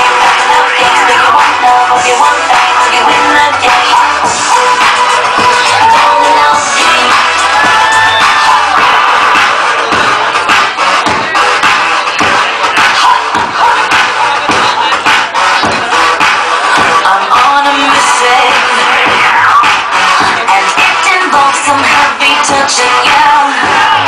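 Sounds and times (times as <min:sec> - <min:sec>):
crowd cheering and shouting: 0:00.0 - 0:24.0
loud dance music: 0:00.0 - 0:24.0.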